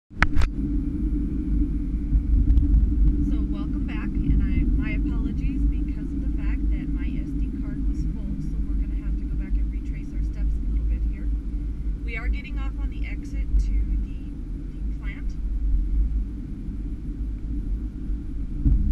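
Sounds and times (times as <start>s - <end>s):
car engine and tyre rumble: 0.1s - 18.9s.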